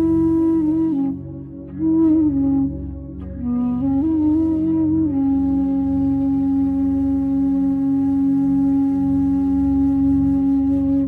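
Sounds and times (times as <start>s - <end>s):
bansuri flute long note: 0.0s - 11.0s
soft sustained drone: 0.0s - 11.0s.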